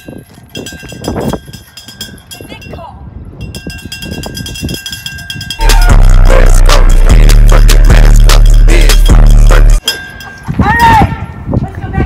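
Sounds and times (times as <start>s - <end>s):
faint outdoor background: 0.0s - 12.0s
bass-heavy music with steady beat: 5.6s - 9.8s.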